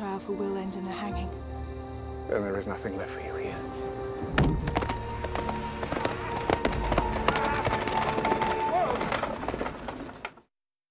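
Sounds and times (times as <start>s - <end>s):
film score music: 0.0s - 10.2s
horse hooves clip-clopping: 4.4s - 10.4s.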